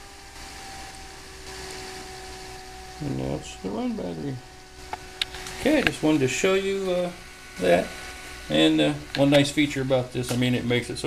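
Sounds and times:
motor humming with whine: 0.0 - 11.0.

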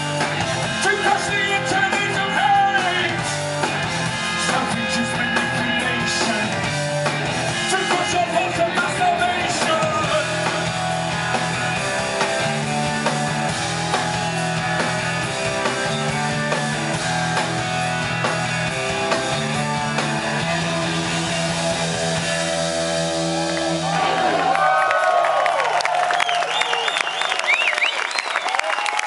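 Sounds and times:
drum kit: 0.0 - 24.5
bass notes: 0.0 - 24.6
electric guitar: 0.0 - 24.7.

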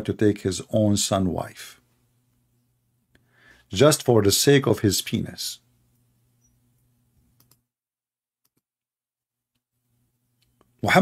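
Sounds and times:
faint clicks: 5.9 - 7.6.

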